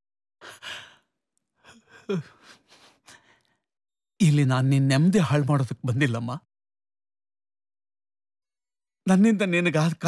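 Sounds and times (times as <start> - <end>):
person sighing: 0.4 - 1.0, 1.7 - 3.4.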